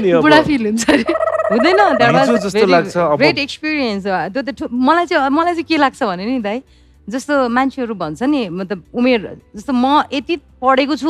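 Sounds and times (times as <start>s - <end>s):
people talking: 0.3s - 5.9s
steady warbling tone: 1.1s - 2.8s.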